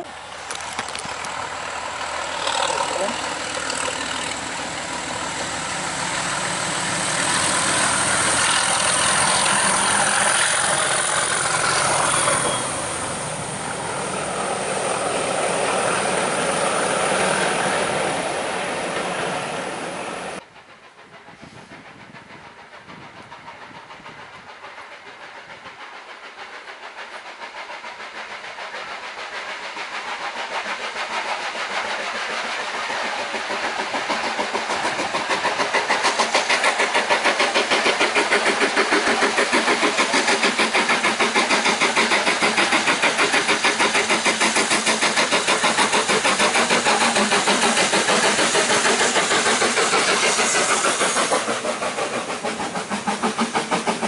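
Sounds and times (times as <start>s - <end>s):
steam locomotive exhaust beating: 0.0s - 54.0s.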